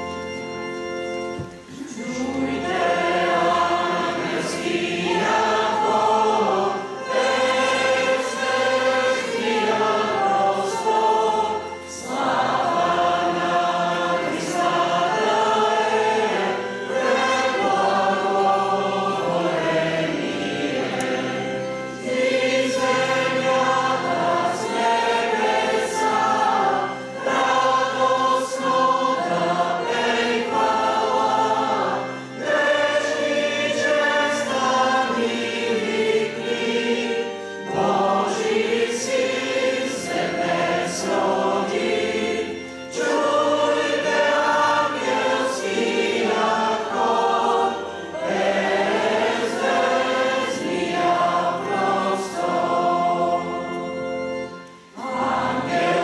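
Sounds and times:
choir singing: 0:00.0 - 0:56.0
keyboard accompaniment: 0:00.0 - 0:56.0.

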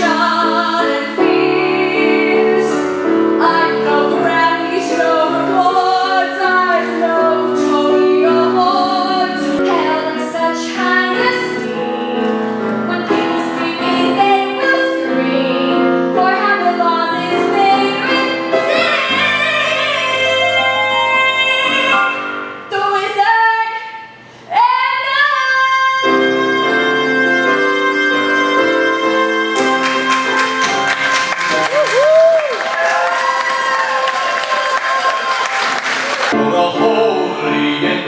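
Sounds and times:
piano accompaniment: 0:00.0 - 0:23.2, 0:25.4 - 0:38.0
audience applauding and cheering: 0:29.6 - 0:36.4
whoops: 0:31.5 - 0:35.8.

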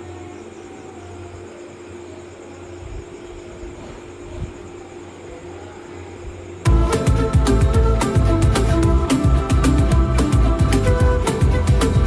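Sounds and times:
faint hum: 0:00.0 - 0:12.0
low background hiss: 0:04.6 - 0:12.0.

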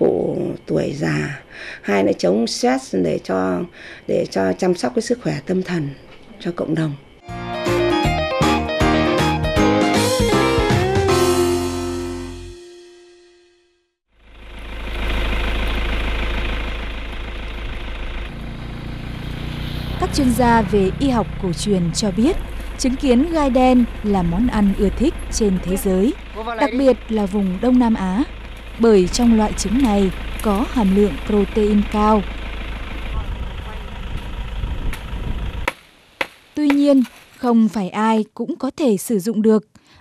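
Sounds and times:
motor running with low rumble: 0:14.1 - 0:37.4
leafy branches rustling and snapping: 0:28.4 - 0:31.2, 0:34.9 - 0:37.9.

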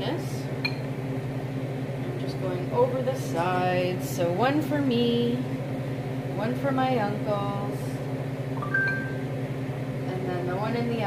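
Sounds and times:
steady low hum: 0:00.0 - 0:11.0
two-note chime: 0:08.6 - 0:09.2.

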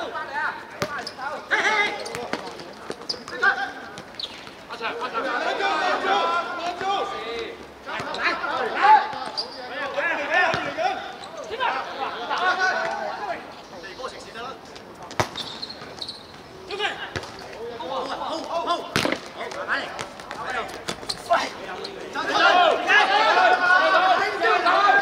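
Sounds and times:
players shouting: 0:00.0 - 0:02.4, 0:04.7 - 0:13.6, 0:16.6 - 0:25.0.

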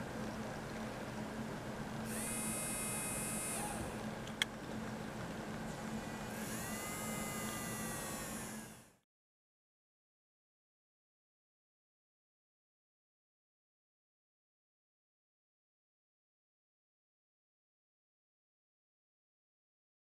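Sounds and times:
low steady hum: 0:00.0 - 0:09.0
small motor whining: 0:02.0 - 0:04.1, 0:05.7 - 0:09.0.

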